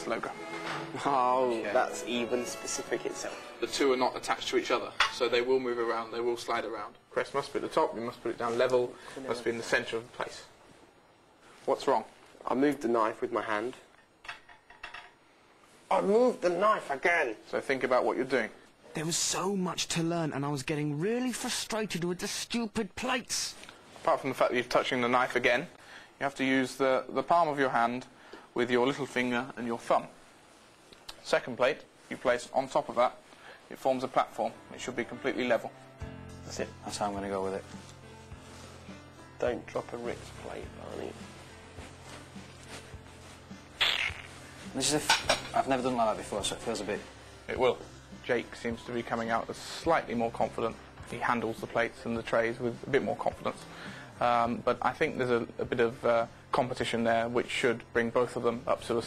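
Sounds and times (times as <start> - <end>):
plates and cutlery clinking: 4.8 - 5.4, 14.2 - 15.2, 44.9 - 45.7.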